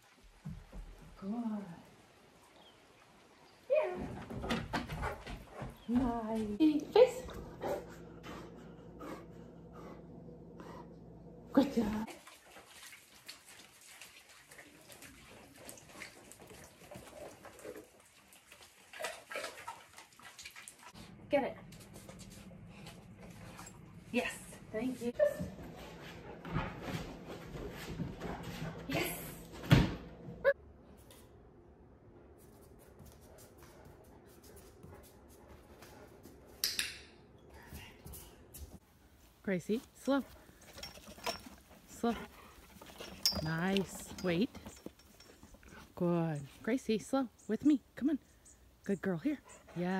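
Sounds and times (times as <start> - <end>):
faint outdoor background noise: 0.0 - 26.0, 30.5 - 49.9
woman speaking calmly: 1.2 - 1.9, 5.9 - 7.4, 11.5 - 12.1, 24.1 - 25.4, 39.4 - 40.4, 41.9 - 42.4, 43.3 - 44.8, 45.8 - 49.9
rain patter and dripping: 12.0 - 21.0.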